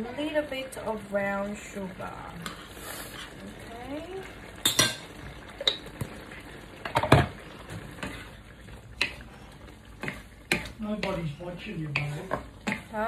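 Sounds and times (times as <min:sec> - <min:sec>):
simmering pot hiss: 0:00.0 - 0:13.0
utensils knocking and scraping pan: 0:10.0 - 0:13.0.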